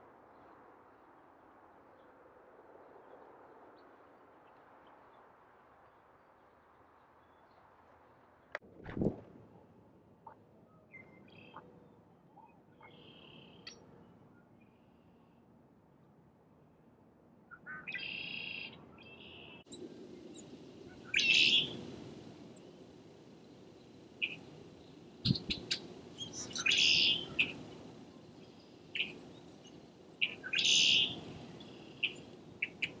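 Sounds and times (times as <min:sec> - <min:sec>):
songbirds chirping and singing: 0:17.6 - 0:33.0.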